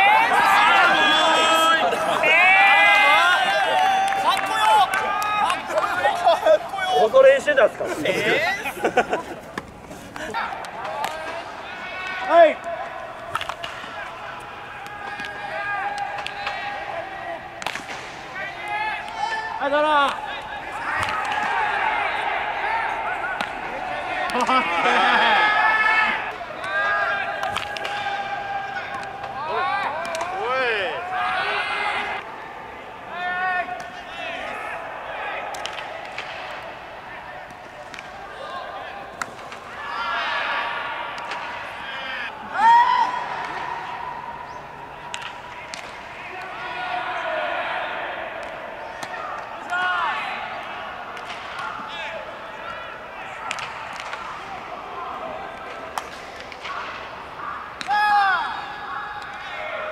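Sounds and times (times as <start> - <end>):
loud shout: 0.0 - 7.6, 10.2 - 17.5, 18.4 - 32.2, 33.1 - 37.4, 39.7 - 44.5, 45.6 - 55.6, 57.4 - 59.9
players' voices and calls: 0.0 - 59.9.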